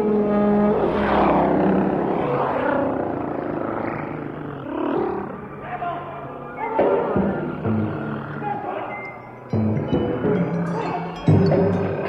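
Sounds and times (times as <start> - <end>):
held horn-like tones: 0.0 - 3.6.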